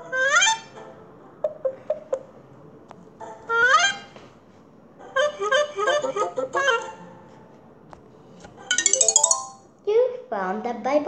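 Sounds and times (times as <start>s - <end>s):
quick short cartoon notes: 8.8s - 9.6s.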